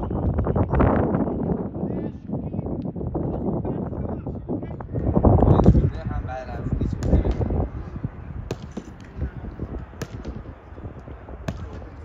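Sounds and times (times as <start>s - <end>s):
footballs thudding against gloves: 8.5s - 12.0s.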